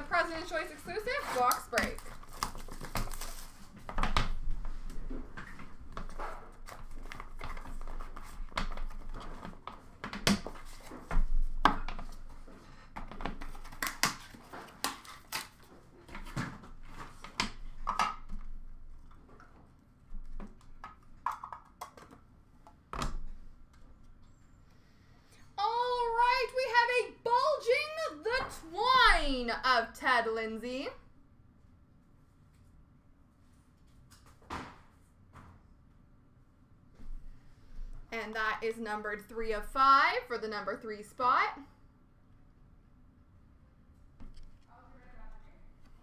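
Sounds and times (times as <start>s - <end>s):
cards rustling and tapping: 0.9s - 18.5s.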